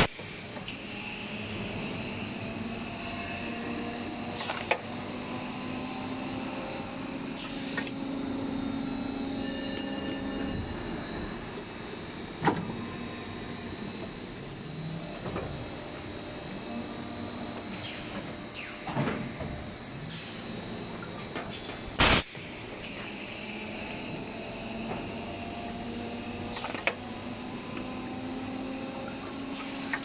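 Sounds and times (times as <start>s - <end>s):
machine humming and whining: 0.0s - 30.0s.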